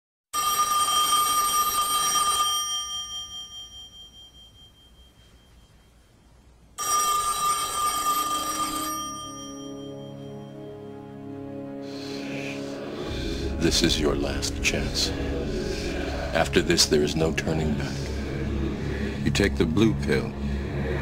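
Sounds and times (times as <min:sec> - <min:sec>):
telephone bell ringing: 0:00.4 - 0:05.8, 0:06.8 - 0:11.0
low steady tones: 0:02.6 - 0:06.8, 0:08.3 - 0:21.0.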